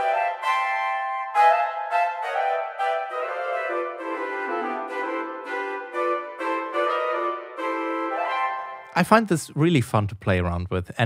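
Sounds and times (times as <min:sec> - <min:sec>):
orchestral flutes and clarinets melody: 0:00.0 - 0:09.0.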